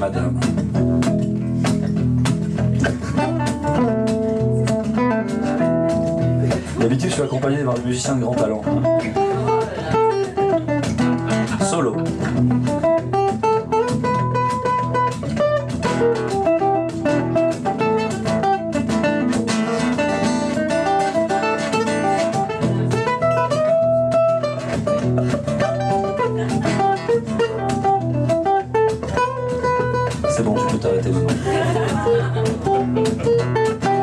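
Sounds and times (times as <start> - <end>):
acoustic guitar picking melody: 0.0 - 34.0
acoustic guitar strumming: 0.0 - 34.0.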